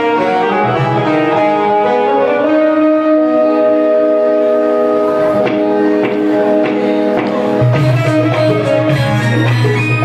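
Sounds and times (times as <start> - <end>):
electronic keyboard chord: 0.0 - 10.0.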